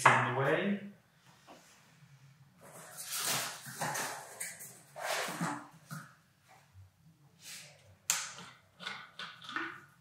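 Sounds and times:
packaging rustling and scraping: 0:02.6 - 0:05.6.

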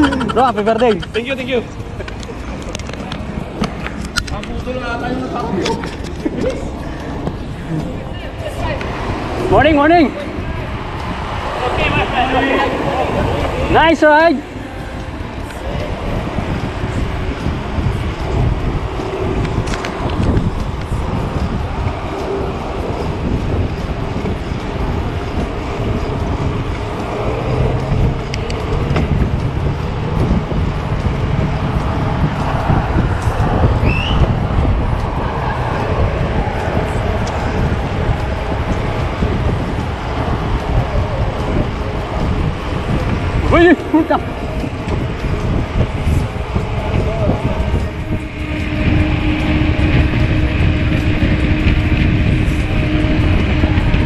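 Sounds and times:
bicycle road rumble: 0:00.0 - 0:54.0
wind buffeting microphone: 0:00.0 - 0:54.0.

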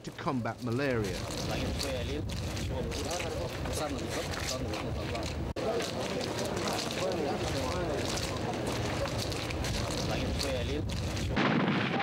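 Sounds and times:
steady background noise: 0:00.0 - 0:12.0
loud gunfire blast: 0:11.4 - 0:12.0.

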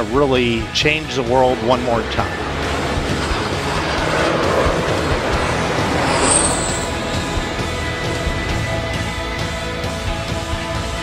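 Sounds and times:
jet engines rumbling: 0:00.0 - 0:10.4.

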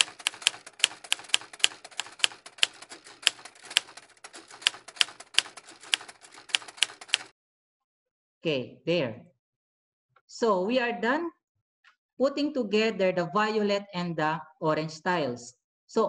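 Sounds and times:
computer mouse clicking: 0:00.0 - 0:07.3.

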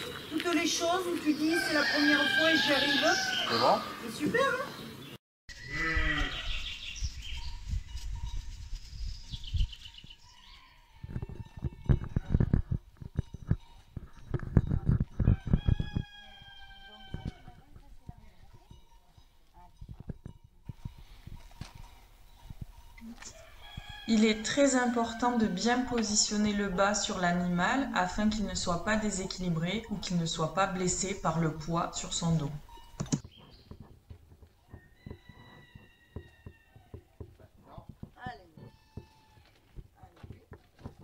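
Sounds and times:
footsteps on dirt: 0:00.0 - 0:02.9, 0:20.1 - 0:24.0, 0:32.9 - 0:41.0
rooster crowing: 0:01.5 - 0:04.0, 0:15.3 - 0:17.4, 0:23.3 - 0:25.8, 0:34.8 - 0:37.1
wooden saddle knocks and clicks: 0:32.9 - 0:41.0.

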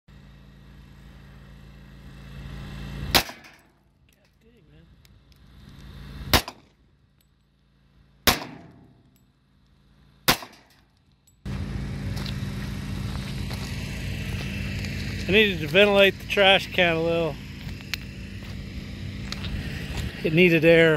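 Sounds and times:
pistol shots with echo: 0:06.3 - 0:06.6, 0:08.3 - 0:09.0, 0:10.3 - 0:10.7.

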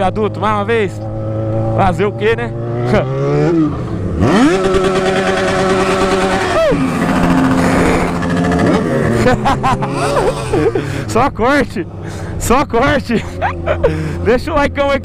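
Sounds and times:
motorcycle engine revving: 0:00.0 - 0:15.0.

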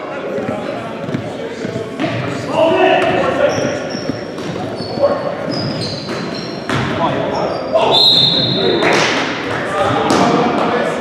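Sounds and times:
players' voices echoing: 0:00.0 - 0:11.0
basketball bouncing on wooden floor: 0:03.0 - 0:07.0
sneaker squeal on court: 0:03.0 - 0:08.9.

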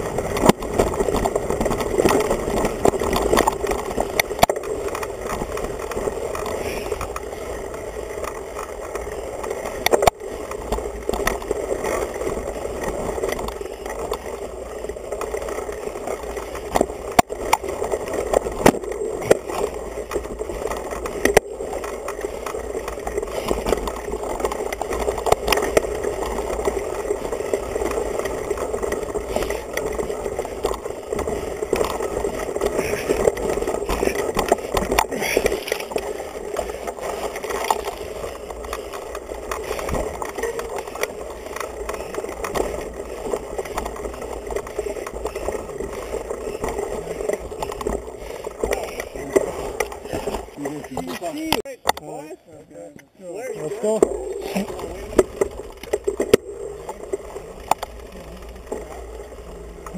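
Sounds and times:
bike frame knocks and rattles: 0:00.0 - 0:52.0
mountain bike rumbling on dirt trail: 0:00.0 - 0:59.9.

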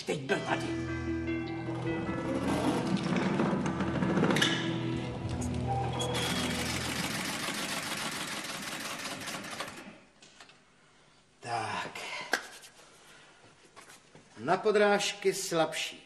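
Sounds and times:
film score music: 0:00.0 - 0:07.6
sewing machine running: 0:02.1 - 0:05.1, 0:05.8 - 0:10.0.

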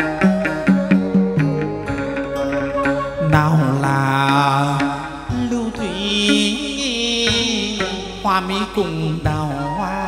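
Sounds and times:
plucked lute: 0:00.0 - 0:09.6
person singing long wavering notes: 0:00.0 - 0:10.0.

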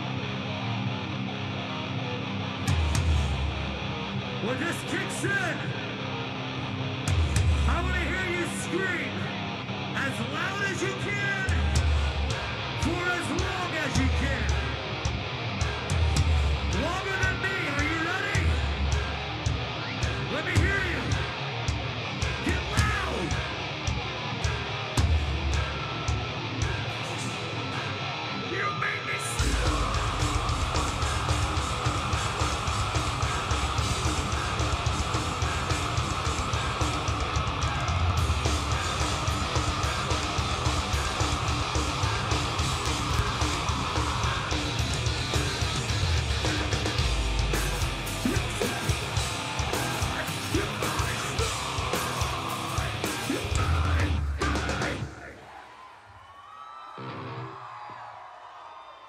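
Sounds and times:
distorted electric guitars: 0:00.0 - 0:55.6, 0:56.9 - 0:57.8
drums: 0:00.0 - 0:58.4
vocals: 0:04.4 - 0:06.1, 0:07.2 - 0:56.1
rapid kick drum strokes: 0:29.4 - 0:54.8.

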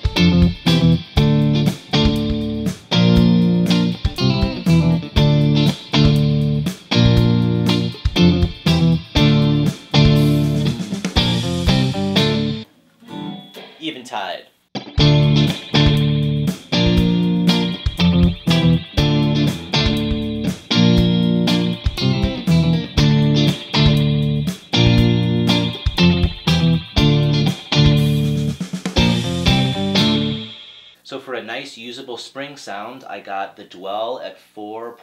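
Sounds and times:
electric guitar with spring reverb: 0:00.0 - 0:13.9, 0:14.8 - 0:30.9.

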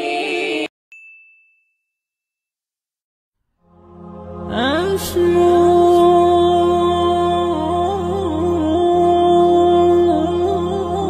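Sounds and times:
bright high ding: 0:00.9 - 0:02.2
background music with singing: 0:03.7 - 0:11.0.

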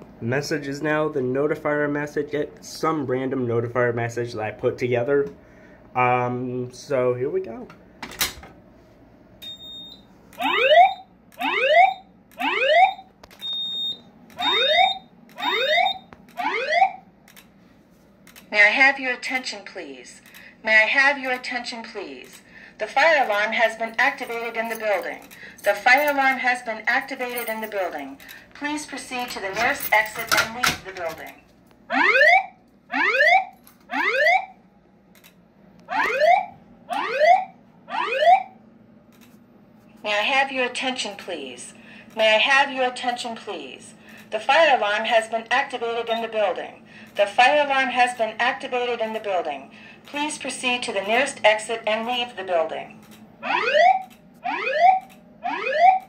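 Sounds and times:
high-pitched alarm beeps: 0:09.4 - 0:17.0, 0:31.9 - 0:34.5, 0:35.9 - 0:38.6, 0:53.4 - 0:56.0
rising whoop alarm tone: 0:10.4 - 0:13.1, 0:14.4 - 0:17.0, 0:31.9 - 0:34.5, 0:35.9 - 0:38.6, 0:53.4 - 0:56.0.

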